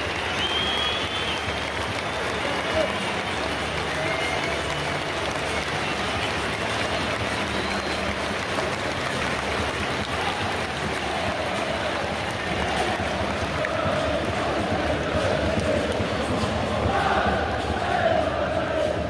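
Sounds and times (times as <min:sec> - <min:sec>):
crowd cheering and applauding: 0:00.0 - 0:19.0
crowd chanting: 0:10.2 - 0:19.0.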